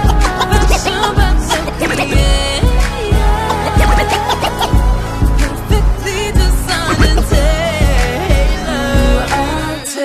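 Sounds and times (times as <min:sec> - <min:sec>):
turntable scratching: 0:00.0 - 0:02.4, 0:03.3 - 0:04.9, 0:06.7 - 0:07.6
hip hop beat with heavy bass drum: 0:00.0 - 0:10.0.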